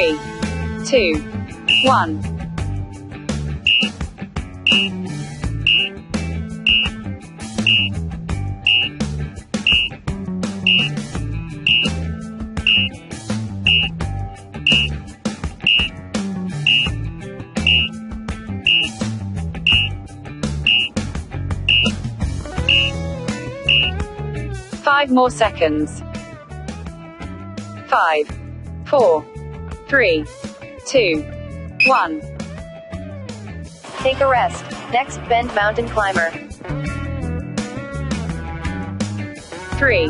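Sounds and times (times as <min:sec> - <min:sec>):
short high timer beeps: 0:01.7 - 0:02.0, 0:03.6 - 0:03.9, 0:04.7 - 0:05.0, 0:05.7 - 0:05.9, 0:06.7 - 0:06.9, 0:07.6 - 0:07.9, 0:08.6 - 0:08.9, 0:09.6 - 0:09.9, 0:10.6 - 0:10.9, 0:11.7 - 0:11.9, 0:12.6 - 0:12.9, 0:13.7 - 0:13.9, 0:14.6 - 0:14.9, 0:15.6 - 0:15.9, 0:16.6 - 0:16.9, 0:17.6 - 0:17.9, 0:18.7 - 0:18.9, 0:19.7 - 0:19.9, 0:20.7 - 0:20.9, 0:21.7 - 0:21.9, 0:22.7 - 0:22.9, 0:23.7 - 0:23.9
background music with beat and guitar: 0:36.4 - 0:39.8.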